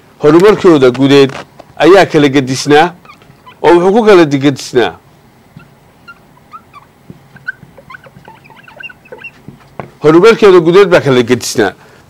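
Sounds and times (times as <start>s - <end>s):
person speaking: 0.2s - 11.8s
high animal chirps: 3.0s - 3.8s, 5.5s - 10.0s.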